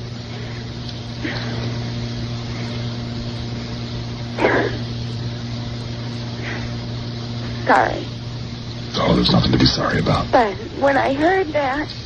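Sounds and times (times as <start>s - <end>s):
low telephone line hum: 0.0s - 12.0s.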